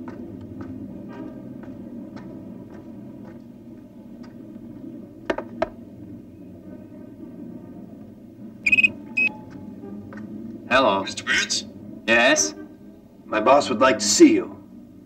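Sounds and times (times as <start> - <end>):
low steady hum: 0.0 - 15.0
mobile phone beeps: 8.7 - 9.3
man speaking: 10.7 - 12.6.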